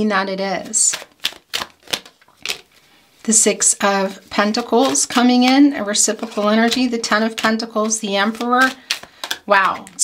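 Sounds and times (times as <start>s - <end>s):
cards snapping on wooden table: 8.9s - 9.5s.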